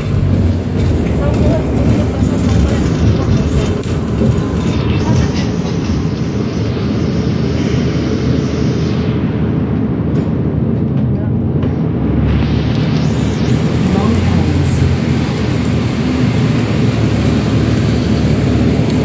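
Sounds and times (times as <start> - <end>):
bus engine and road rumble: 0.0 - 19.0.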